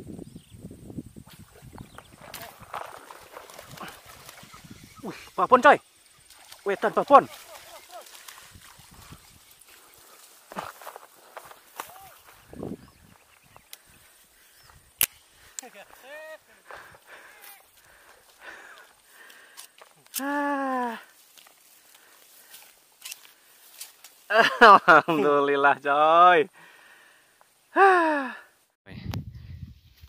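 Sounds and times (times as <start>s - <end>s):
footsteps in dry grass: 1.4s - 5.4s, 6.2s - 20.1s, 20.9s - 25.2s
person calling out: 11.8s - 12.2s, 15.7s - 16.6s, 20.2s - 21.1s.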